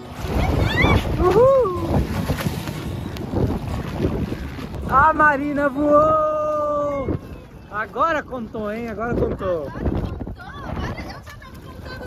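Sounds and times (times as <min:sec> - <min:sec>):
water splashing and lapping: 0:00.0 - 0:12.0
wind buffeting microphone: 0:00.0 - 0:12.0.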